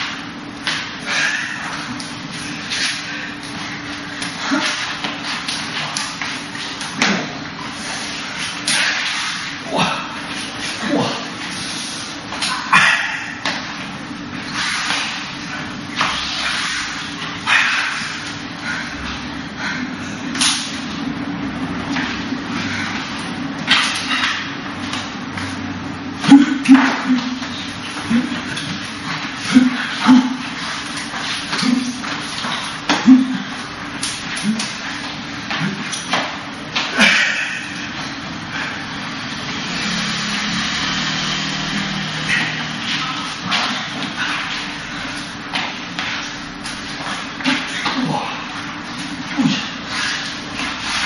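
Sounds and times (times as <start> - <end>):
slapping swishes of arms: 1.7 - 7.3, 12.3 - 18.4, 20.3 - 21.0, 23.2 - 25.6, 26.2 - 37.9, 42.2 - 48.2.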